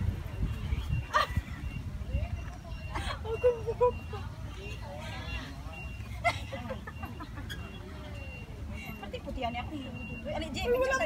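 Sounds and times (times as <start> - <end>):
people talking quietly: 0.0 - 11.0.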